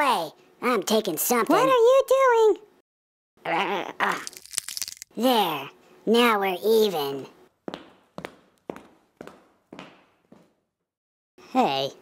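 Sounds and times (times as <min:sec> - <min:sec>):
footstep taps: 0:07.6 - 0:10.6.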